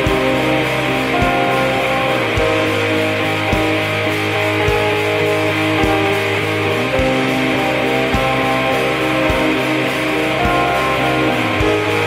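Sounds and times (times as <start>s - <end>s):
black metal music: 0.0s - 12.0s.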